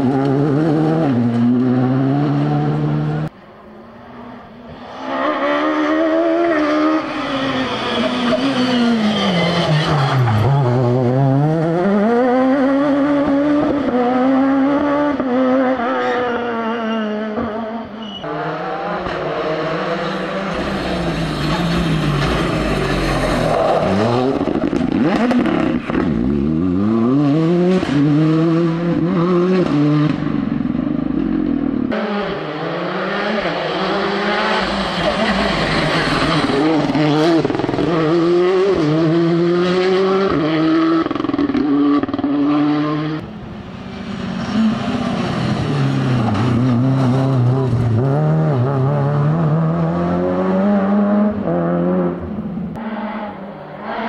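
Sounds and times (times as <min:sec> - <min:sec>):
rally car engines revving: 0:00.0 - 0:54.0.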